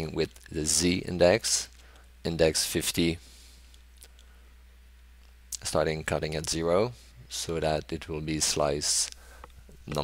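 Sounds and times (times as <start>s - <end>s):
low electrical hum: 0.0s - 10.0s
person speaking: 5.5s - 10.0s.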